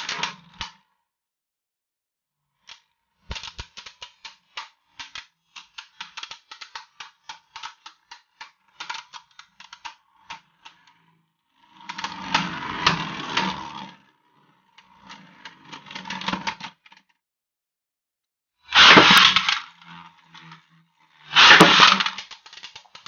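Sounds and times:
spinning tops clicking together: 3.3 - 10.8, 18.7 - 20.6, 21.2 - 23.0
spinning tops rattling clatter: 3.3 - 10.8, 18.7 - 20.6, 21.2 - 23.0.

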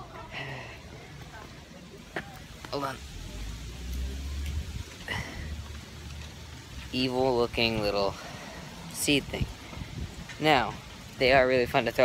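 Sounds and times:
wind buffeting microphone: 7.5 - 11.8.

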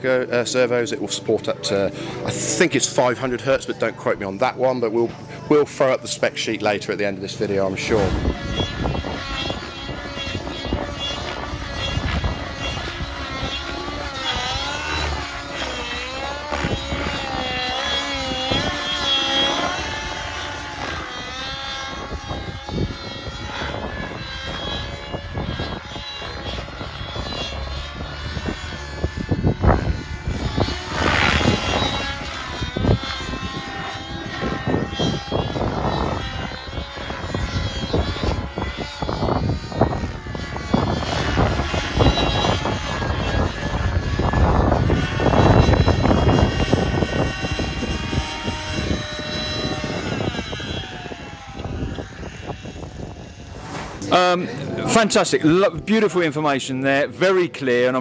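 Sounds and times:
model helicopter motor and rotor: 0.0 - 58.0.

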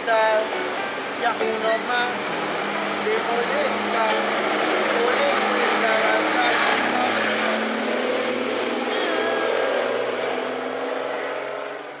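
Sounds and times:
bus engine humming: 0.0 - 12.0
road noise: 0.0 - 12.0.

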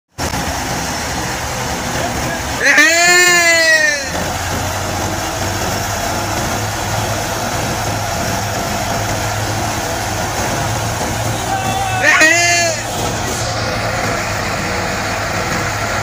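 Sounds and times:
threshing machine running: 0.1 - 16.0
tractor engine: 0.1 - 16.0.

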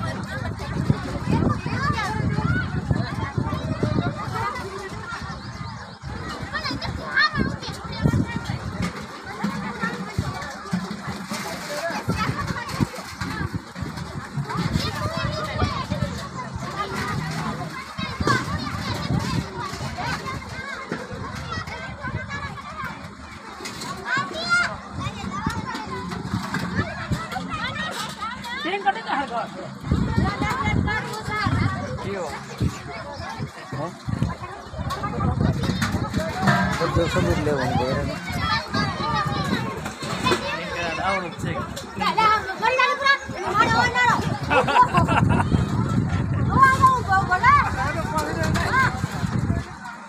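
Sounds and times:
children's high voices: 0.0 - 50.0
crowd of women chattering: 0.0 - 50.0.

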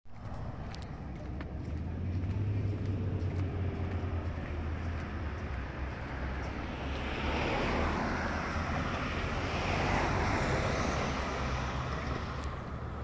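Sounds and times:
steady low rumble: 0.1 - 7.1
car passing: 0.2 - 13.0.

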